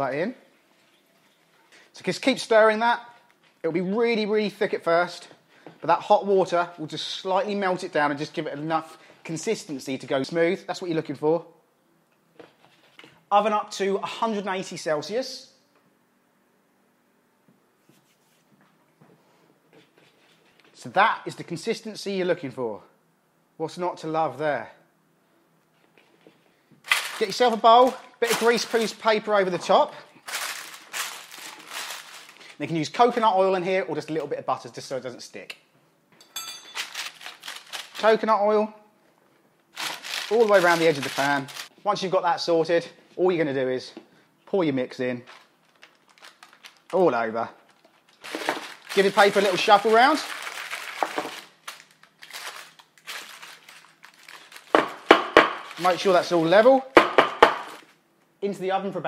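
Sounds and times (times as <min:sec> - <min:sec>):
baking paper rustling: 0:26.8 - 0:33.4, 0:36.6 - 0:38.4, 0:39.7 - 0:41.8, 0:45.0 - 0:56.8.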